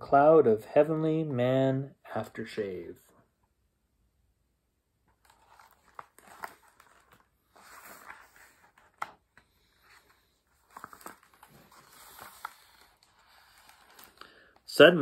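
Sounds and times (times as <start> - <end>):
paper rustling: 5.1 - 14.8
page turning: 5.1 - 15.0.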